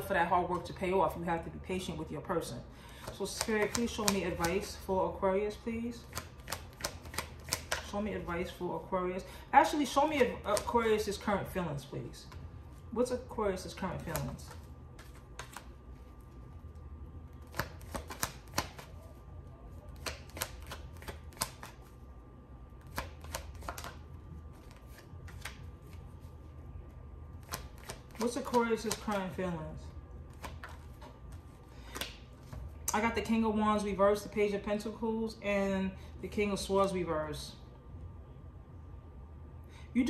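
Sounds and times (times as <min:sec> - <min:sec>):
cards being shuffled: 0:03.0 - 0:04.8, 0:06.0 - 0:07.9, 0:13.7 - 0:16.5, 0:17.3 - 0:19.0, 0:19.8 - 0:22.0, 0:22.8 - 0:26.4, 0:27.4 - 0:29.4, 0:30.3 - 0:32.9.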